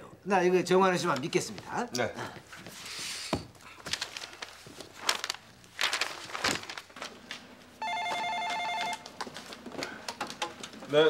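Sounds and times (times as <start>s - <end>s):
rustling: 2.5s - 7.4s
telephone ringing: 7.8s - 9.4s.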